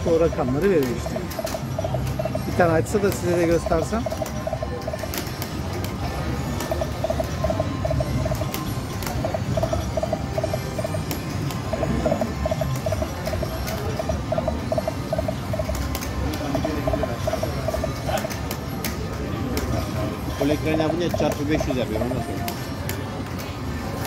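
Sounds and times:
casino background hum: 0:00.0 - 0:24.0
scattered clicks: 0:00.0 - 0:24.0
slot machine electronic beeps: 0:00.0 - 0:24.0.

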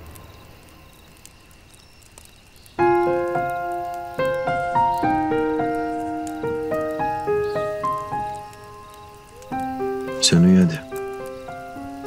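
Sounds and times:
soft slow piano music: 0:02.8 - 0:12.0.

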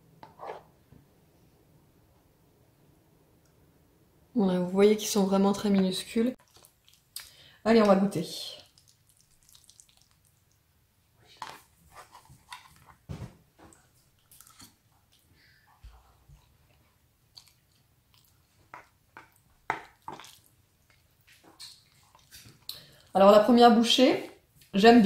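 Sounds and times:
person chewing noodles: 0:06.4 - 0:07.4, 0:08.6 - 0:10.6, 0:13.9 - 0:15.4, 0:16.5 - 0:23.1.

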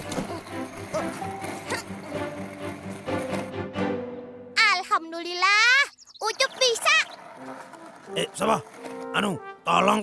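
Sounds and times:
soft background music: 0:07.0 - 0:10.0
man talking: 0:08.1 - 0:10.0.

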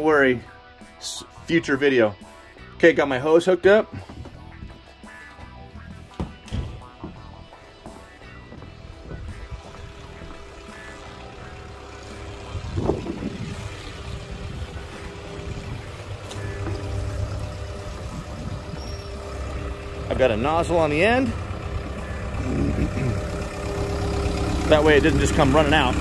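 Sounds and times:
background music: 0:00.0 - 0:26.0
footsteps: 0:04.0 - 0:11.2
skid steer engine idling: 0:05.8 - 0:26.0
handling knocks: 0:06.1 - 0:10.5.

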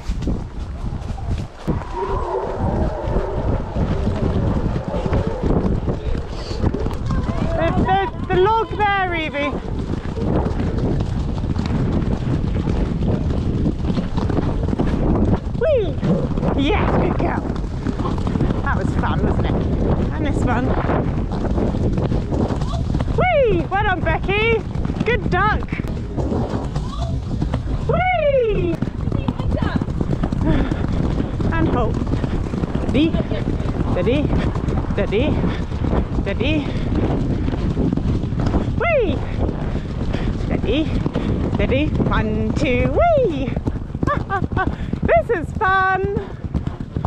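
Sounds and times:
hooves drumming on grass: 0:00.0 - 0:47.0
horse hoofbeats on turf: 0:00.0 - 0:47.0
wind buffeting microphone: 0:00.0 - 0:47.0.

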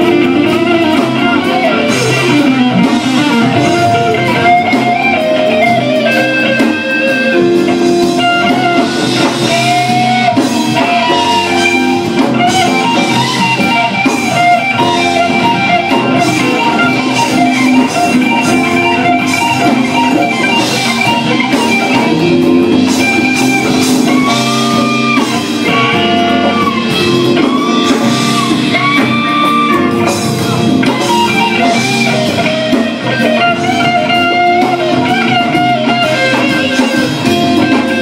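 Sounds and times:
blues band playing: 0:00.0 - 0:38.0.

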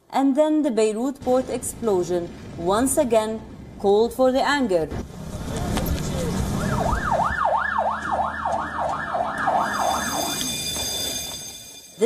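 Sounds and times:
noisy street background: 0:00.1 - 0:12.0
siren yelping: 0:06.4 - 0:11.7.

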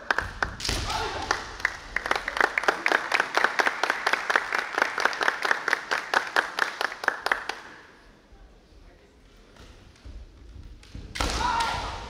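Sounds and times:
loud shout: 0:00.8 - 0:01.4, 0:11.2 - 0:12.0.

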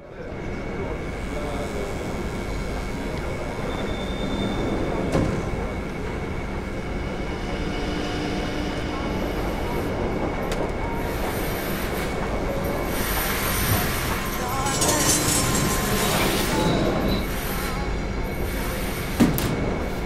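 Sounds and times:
machine running with high whine: 0:12.8 - 0:19.2.

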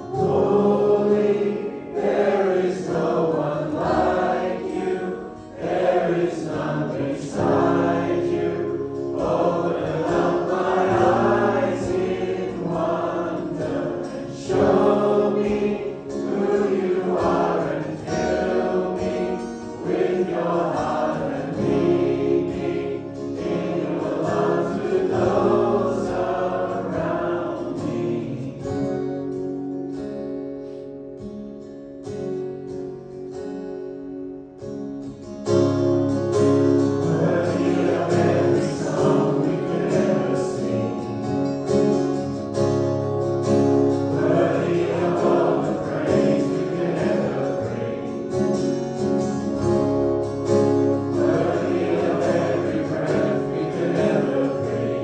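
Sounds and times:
congregation singing: 0:00.0 - 0:29.8, 0:35.6 - 0:55.0.

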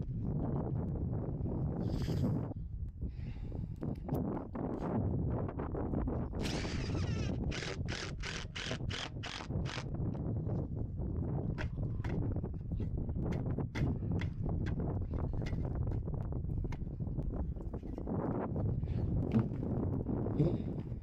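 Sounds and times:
wind on microphone: 0:00.0 - 0:21.0
impact driver driving screws: 0:06.4 - 0:09.8.

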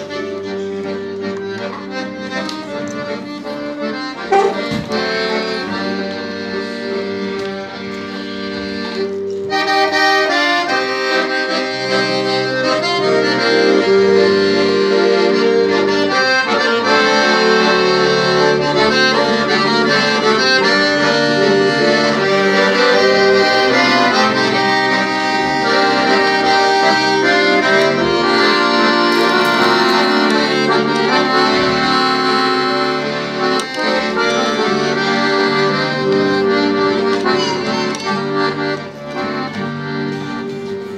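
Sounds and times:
accordion playing a melody: 0:00.0 - 0:40.9.

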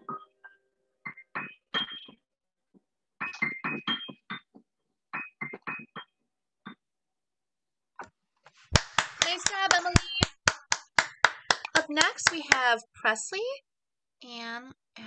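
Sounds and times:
people clapping: 0:08.7 - 0:12.8.

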